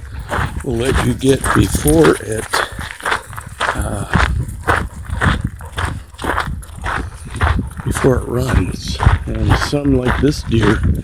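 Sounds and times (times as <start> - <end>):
footsteps on a trail: 0.0 - 11.0.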